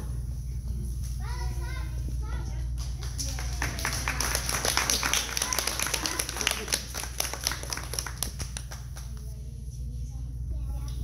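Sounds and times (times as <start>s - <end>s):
audience applause: 3.1s - 8.8s.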